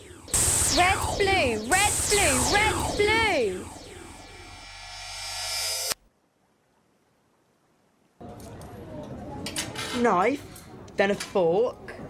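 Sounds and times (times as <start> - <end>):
synthesized steady tones: 0.0 - 6.0.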